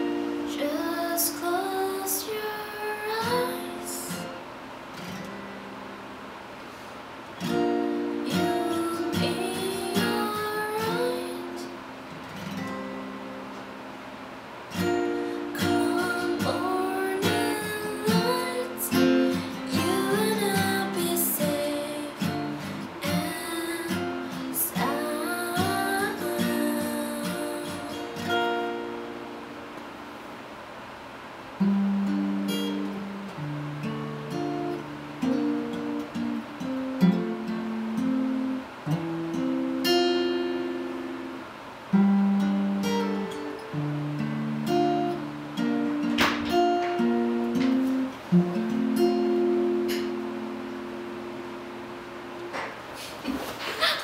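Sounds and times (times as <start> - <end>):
person singing: 0.0 - 4.4, 8.3 - 11.8, 15.4 - 28.4
acoustic guitar picking: 0.0 - 54.0.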